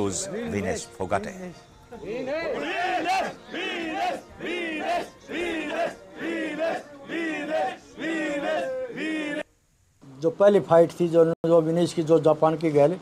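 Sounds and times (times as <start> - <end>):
men chanting in unison: 2.5 - 9.5.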